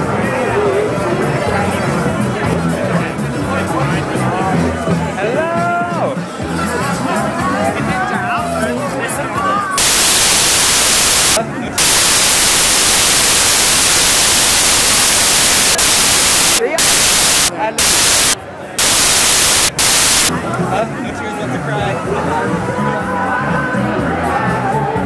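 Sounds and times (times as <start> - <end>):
loud static hiss: 9.8 - 20.3.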